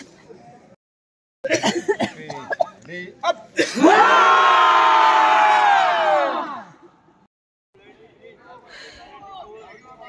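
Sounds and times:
group yelling: 3.7s - 6.8s.

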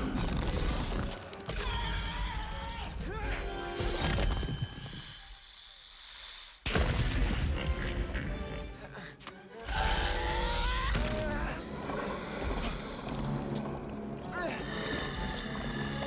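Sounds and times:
dramatic orchestral music: 0.0s - 4.7s, 7.1s - 16.0s
hiss: 4.8s - 6.7s, 11.6s - 13.4s.

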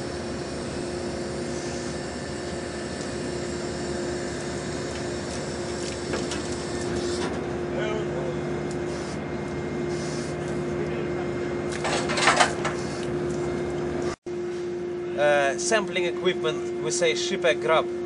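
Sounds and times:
deck machinery humming: 0.0s - 18.0s
lower machinery hum: 0.0s - 18.0s.

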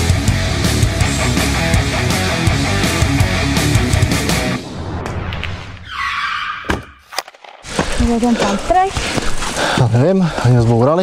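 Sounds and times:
sharp hit: 3.8s - 7.1s
noisy screech: 4.5s - 7.0s.

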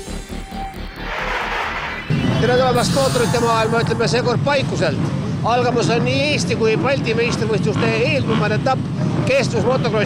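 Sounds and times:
man talking into a microphone: 2.3s - 10.0s
motorcycles idling: 3.5s - 10.0s.

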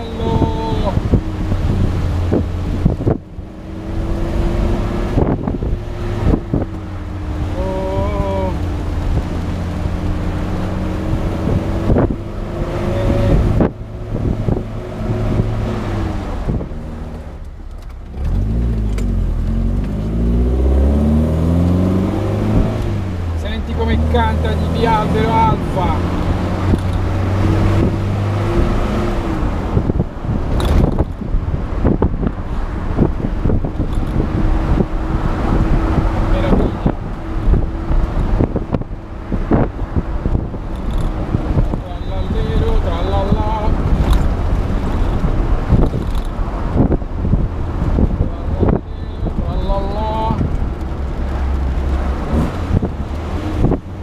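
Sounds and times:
car engine under way: 0.0s - 54.0s
wind buffeting microphone: 0.0s - 54.0s.

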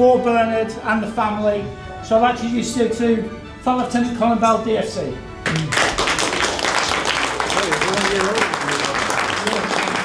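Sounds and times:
audience applauding: 5.4s - 10.0s.

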